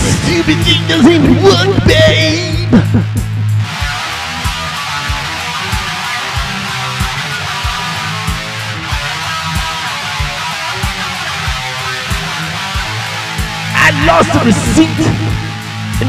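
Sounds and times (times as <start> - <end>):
person singing: 0.0 - 3.0, 13.8 - 16.0
electric guitar: 0.0 - 16.0
low thumping beat: 0.0 - 16.0
held low bass note: 13.8 - 16.0.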